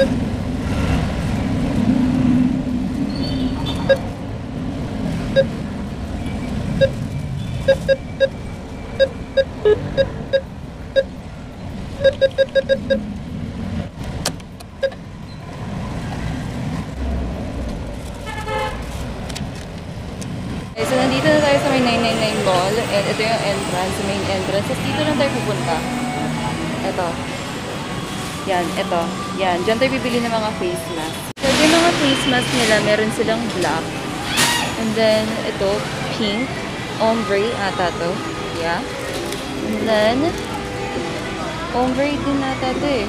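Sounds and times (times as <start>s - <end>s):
keypad beeps: 0.0s - 0.2s, 3.3s - 4.1s, 6.2s - 11.2s, 12.0s - 13.0s, 14.8s - 15.0s
street traffic rumble: 0.0s - 43.0s.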